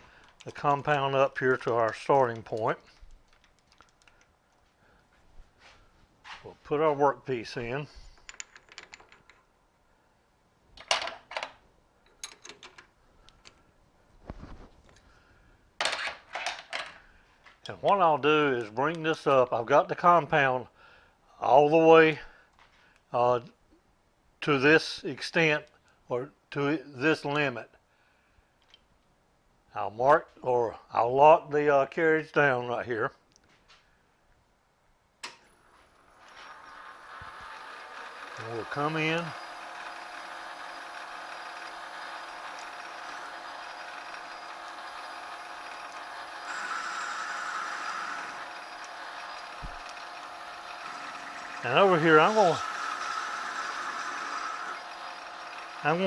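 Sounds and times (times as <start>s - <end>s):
lathe chuck metal clicking: 36.2s - 56.0s.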